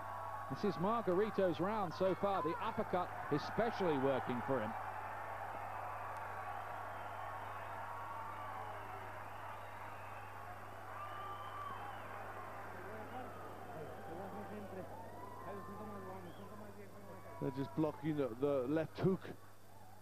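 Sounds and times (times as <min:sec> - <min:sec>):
crowd murmur: 0:12.7 - 0:18.4.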